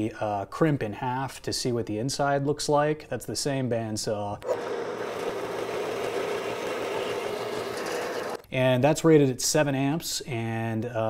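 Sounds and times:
band saw running: 4.4s - 8.4s.

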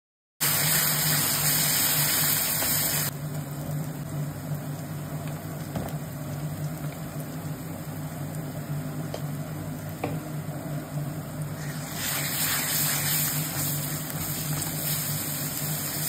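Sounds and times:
vegetables sizzling in oil: 0.4s - 16.0s.

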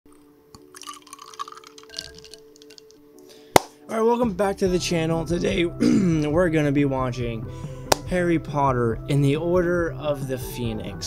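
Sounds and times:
liquid dripping and plopping: 0.6s - 3.0s.

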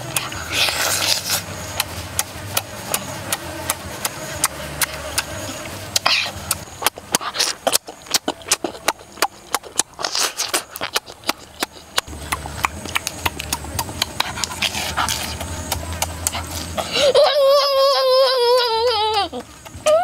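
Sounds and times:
wet chewing and lip-smacking: 0.0s - 16.9s, 18.5s - 20.0s
boy humming with delight: 16.8s - 20.0s.

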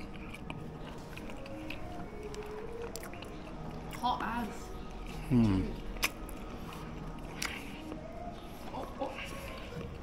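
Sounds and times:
person chewing: 0.0s - 10.0s.

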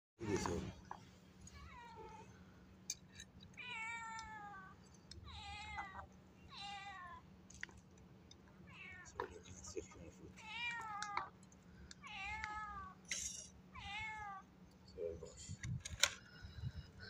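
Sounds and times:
meow-like animal cries: 1.5s - 2.3s, 3.6s - 7.3s, 10.4s - 11.4s, 12.0s - 13.0s, 13.7s - 14.5s.

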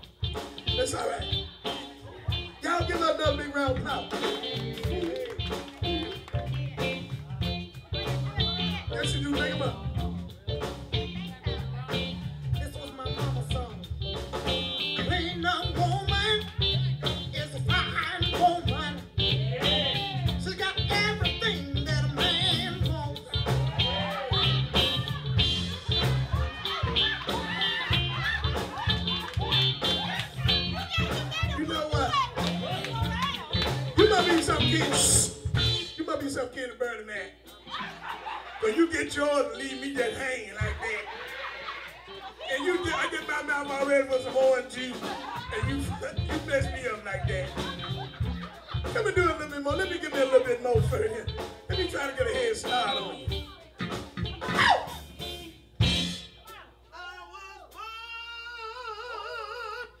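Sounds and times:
drum kit: 0.0s - 36.6s, 37.8s - 56.8s
bass guitar: 0.0s - 56.8s
live band playing: 0.0s - 56.9s
man singing: 8.6s - 10.2s, 12.2s - 13.9s, 15.0s - 25.0s, 34.0s - 37.0s, 42.5s - 48.0s, 48.8s - 53.5s, 57.0s - 60.0s
man singing through microphone: 17.4s - 23.3s, 34.0s - 35.4s, 51.7s - 53.3s.

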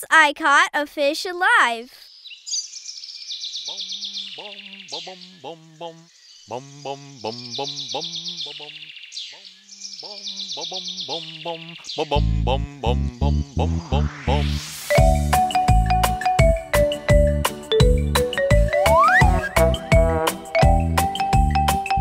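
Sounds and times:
birds chirping and trilling: 1.9s - 22.0s
childlike voices singing: 10.6s - 14.6s
backing music with heavy bass beat: 13.7s - 22.0s.

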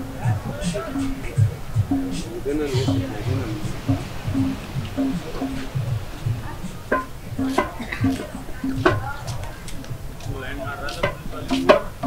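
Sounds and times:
small hand drum beats: 0.0s - 12.0s
voices: 0.0s - 12.0s.

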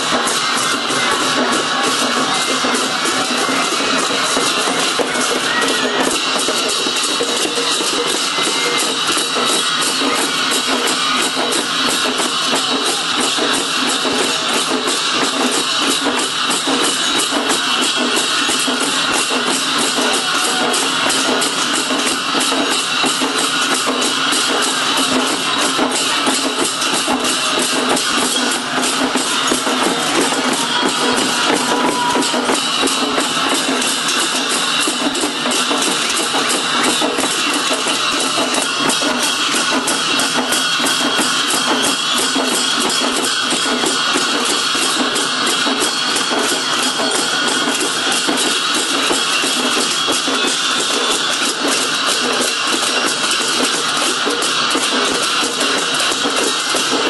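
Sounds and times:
music with fast sharp beat: 0.0s - 57.0s
rapid dense drumbeats: 0.0s - 57.0s.

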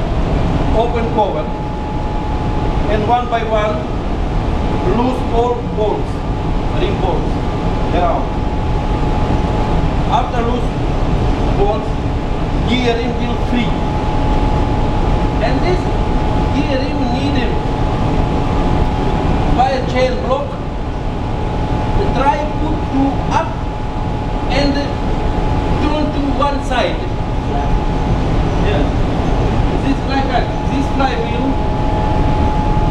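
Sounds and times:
engine-room machinery drone: 0.0s - 32.9s
thin machinery whine: 0.0s - 32.9s.

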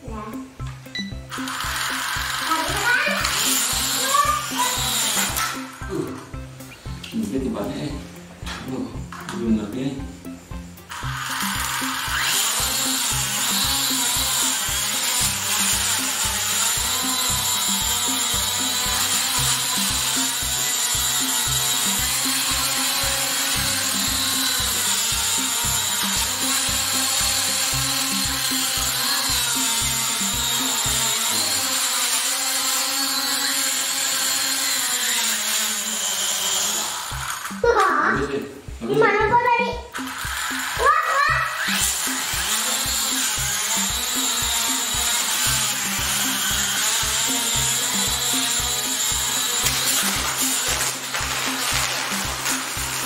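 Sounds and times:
background music with beat: 0.0s - 31.6s, 37.0s - 53.0s
toy drone propellers whining: 0.3s - 7.4s, 10.8s - 38.3s, 39.7s - 53.0s.

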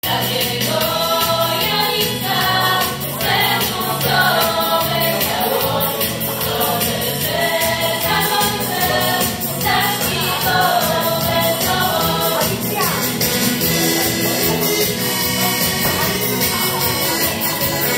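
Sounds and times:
young female voices singing: 0.0s - 13.3s
low instrumental accompaniment: 0.5s - 17.9s.

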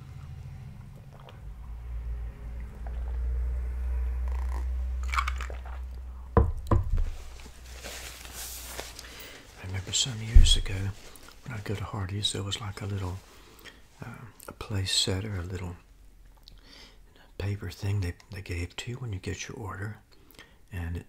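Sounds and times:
man swallowing a drink: 0.8s - 1.7s
soft hiss: 7.0s - 21.0s.

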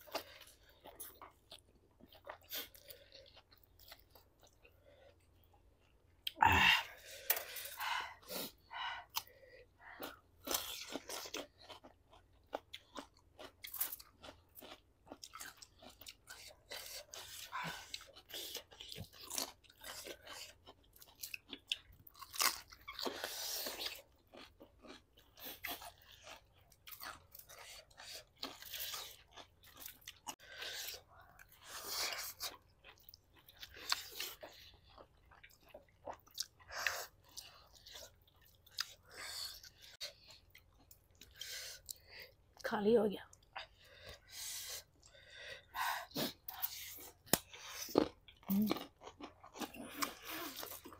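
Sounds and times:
wet chewing: 7.0s - 42.6s, 43.3s - 50.9s.

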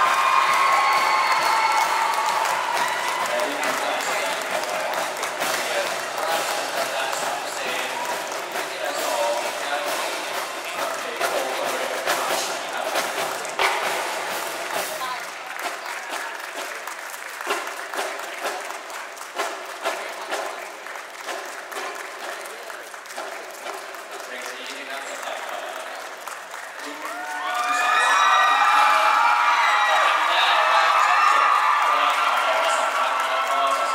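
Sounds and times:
audience applauding in a hall: 0.0s - 33.9s
voices: 2.8s - 14.0s.

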